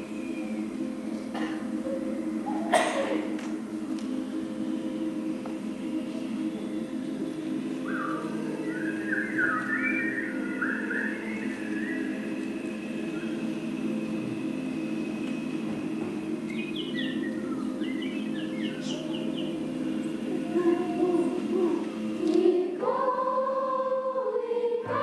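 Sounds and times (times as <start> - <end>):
steady low hum: 0.0 - 25.0
bird chirping: 7.8 - 13.8, 16.2 - 20.4.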